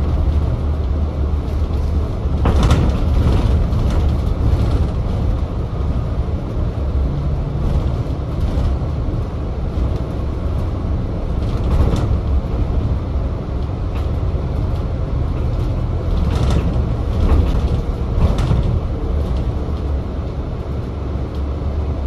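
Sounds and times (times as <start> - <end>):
bus engine and road rumble: 0.0 - 22.0.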